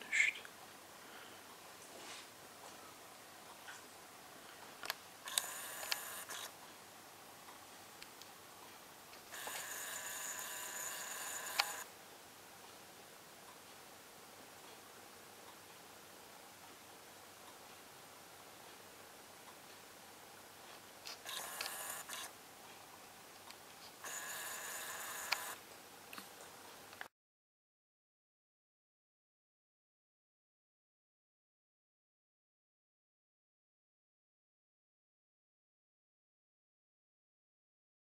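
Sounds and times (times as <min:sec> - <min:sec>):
camcorder zoom motor whine: 0:05.3 - 0:06.5, 0:09.3 - 0:11.9, 0:21.2 - 0:22.3, 0:24.0 - 0:25.6.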